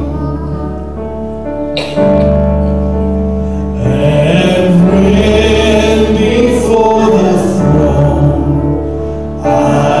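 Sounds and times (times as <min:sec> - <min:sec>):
electric keyboard: 0:00.0 - 0:10.0.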